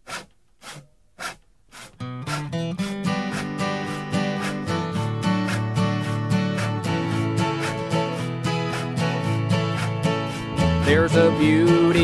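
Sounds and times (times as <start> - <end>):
scraping percussion strokes: 0.0 - 11.6.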